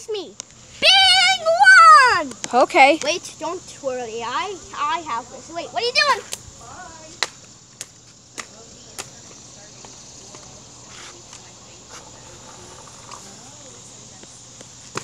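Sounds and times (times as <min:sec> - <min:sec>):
crickets chirring: 0:00.0 - 0:15.0.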